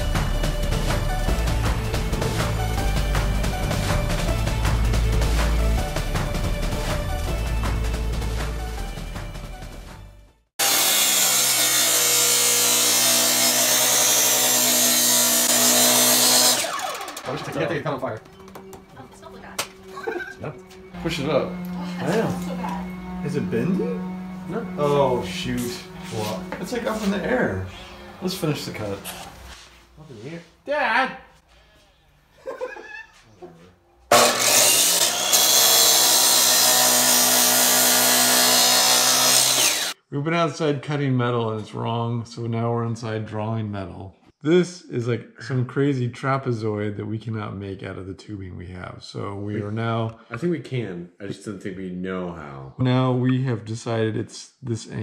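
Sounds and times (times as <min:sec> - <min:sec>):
saw blade grinding metal: 0:10.6 - 0:18.0, 0:19.9 - 0:29.2, 0:34.1 - 0:40.0
saw motor hum: 0:10.6 - 0:29.0, 0:34.1 - 0:40.0.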